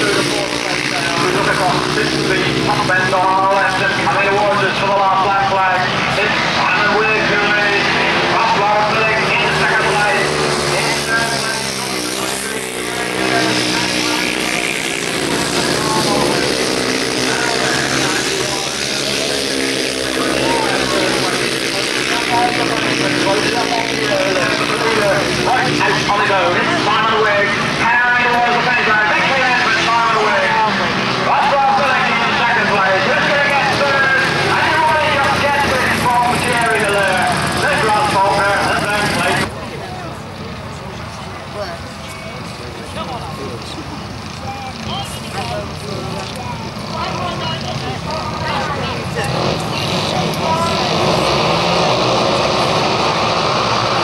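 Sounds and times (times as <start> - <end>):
commentator over public address: 0.0 - 54.0
racing motorcycles revving: 0.0 - 54.0.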